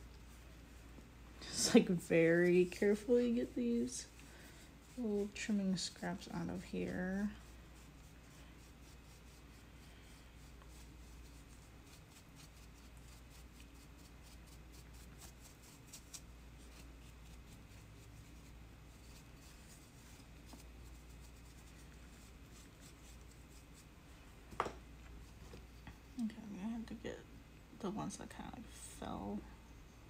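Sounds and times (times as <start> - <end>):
brush scratching clay: 1.4 - 24.0.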